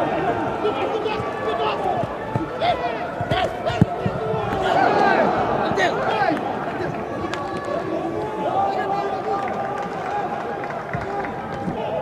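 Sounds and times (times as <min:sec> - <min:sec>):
players shouting: 0:00.0 - 0:12.0
ball being kicked: 0:02.0 - 0:04.8.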